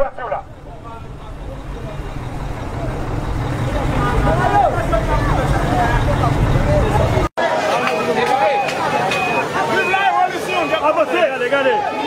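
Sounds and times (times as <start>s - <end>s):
vehicle engine rumbling: 0.0s - 7.3s
people's voices in street: 0.0s - 12.0s.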